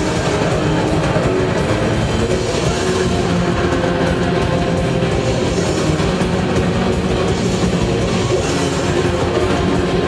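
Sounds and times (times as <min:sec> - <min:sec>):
distorted electric guitars: 0:00.0 - 0:10.0
drums and cymbals: 0:00.0 - 0:10.0.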